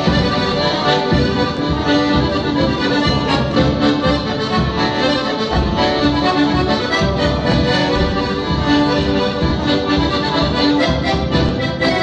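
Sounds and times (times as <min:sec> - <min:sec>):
accordion melody: 0:00.0 - 0:12.0
bass beat: 0:00.0 - 0:12.0.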